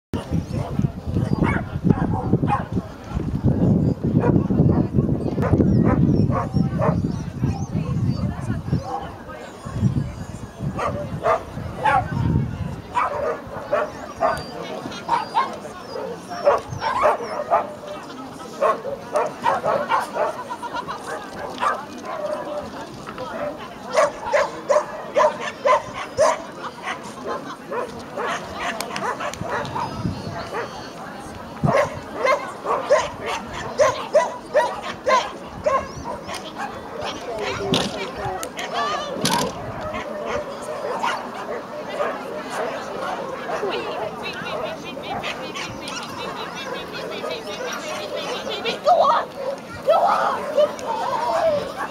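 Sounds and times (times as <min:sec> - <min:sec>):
people's voices: 0:00.1 - 0:51.9
dog barking: 0:01.4 - 0:02.7, 0:05.4 - 0:07.1, 0:10.8 - 0:12.2, 0:12.9 - 0:14.5, 0:16.4 - 0:17.8, 0:18.6 - 0:20.4, 0:23.9 - 0:30.8, 0:31.6 - 0:37.6, 0:39.9 - 0:42.2.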